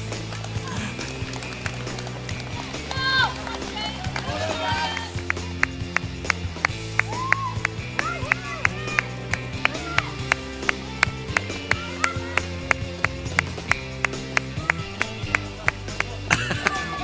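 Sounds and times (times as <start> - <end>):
running footsteps on tarmac: 0.0 - 16.2
steady music: 0.0 - 17.0
spectators' voices: 0.6 - 6.2.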